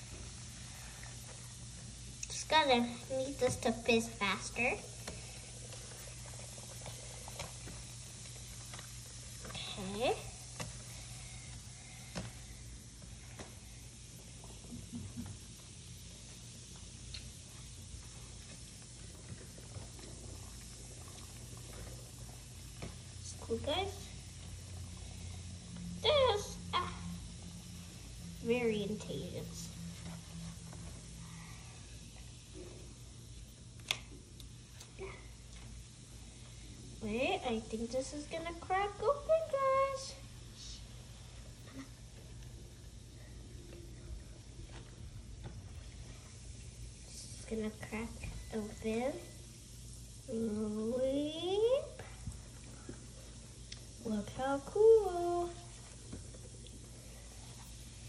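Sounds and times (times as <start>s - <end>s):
bath bomb fizzing in water: 0.0s - 37.8s.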